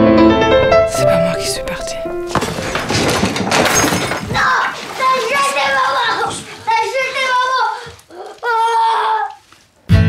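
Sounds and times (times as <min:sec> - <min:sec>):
loud noisy crash: 0:02.1 - 0:04.5
child shouting: 0:04.3 - 0:09.4.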